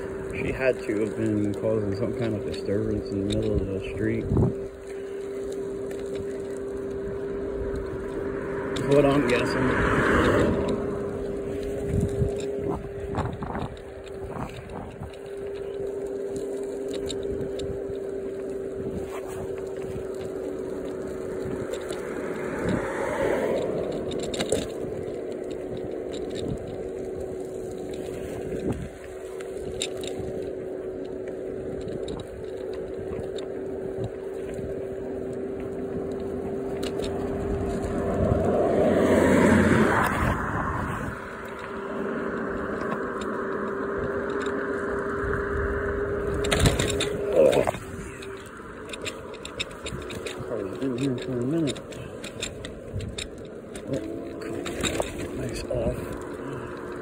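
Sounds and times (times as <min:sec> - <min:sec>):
electric scooter motor whine: 0:00.0 - 0:57.0
traffic passing by: 0:00.0 - 0:57.0
tyre and wind noise: 0:00.0 - 0:57.0.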